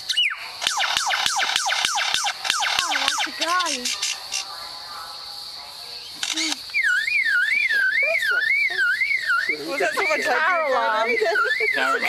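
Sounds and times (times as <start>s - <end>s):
lyrebird whistling: 6.0s - 12.0s.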